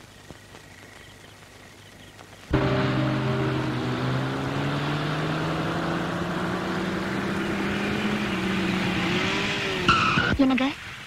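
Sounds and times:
small car engine humming: 2.5 - 10.2.

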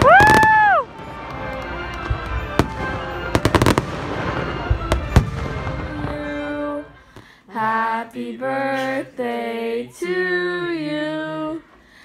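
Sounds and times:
fireworks bangs and crackles: 0.0 - 6.8.

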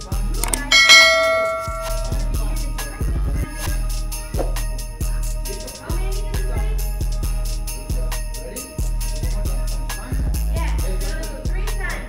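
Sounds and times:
bright bell chime: 0.4 - 2.4.

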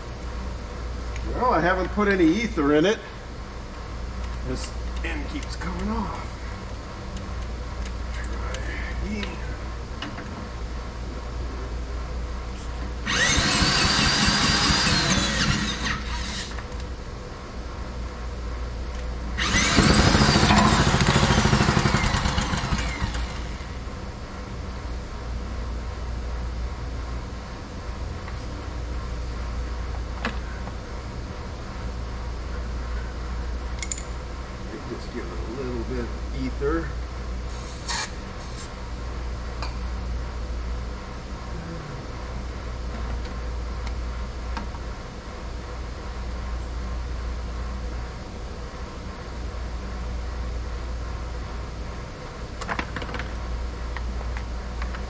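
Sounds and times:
electric drill whining: 13.0 - 16.6, 19.4 - 23.6
small engine cranking over: 13.1 - 16.6, 19.4 - 23.6.

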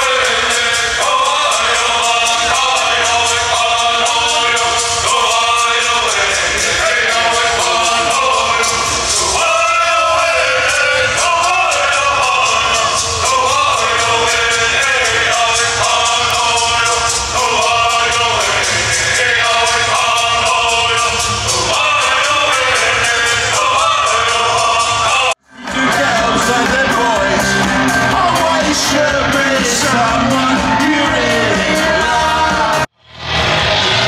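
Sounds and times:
live concert music with singing: 0.0 - 34.0.

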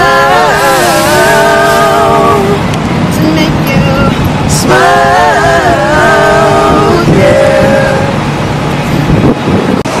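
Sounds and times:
men singing a cappella: 0.0 - 8.2
city street traffic rumble: 0.0 - 10.0.

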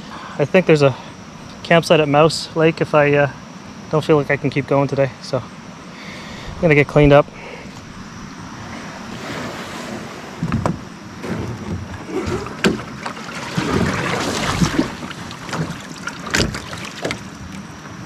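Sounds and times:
water splashing and sloshing: 6.6 - 18.0
knocks against canoe hull: 10.4 - 17.2.

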